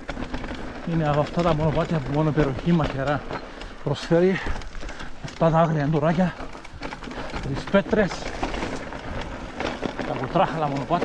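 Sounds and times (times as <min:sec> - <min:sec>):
bike rattling clicks: 0:00.0 - 0:11.0
tyres crunching over stones: 0:00.0 - 0:11.0.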